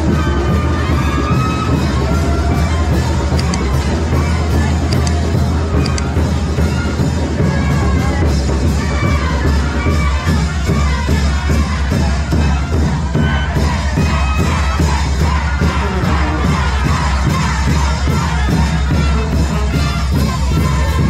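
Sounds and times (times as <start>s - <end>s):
crowd cheering and shouting: 0.0s - 21.0s
live banda music: 0.0s - 21.0s.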